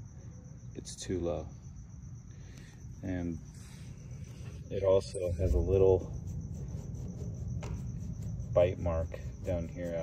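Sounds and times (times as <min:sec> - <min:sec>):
high-pitched insect trill: 0:00.0 - 0:10.0
low background rumble: 0:01.5 - 0:10.0.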